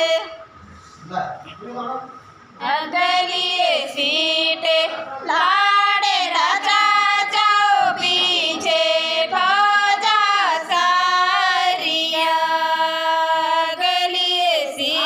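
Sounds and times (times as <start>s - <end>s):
women singing: 0.0s - 0.5s, 2.6s - 15.0s.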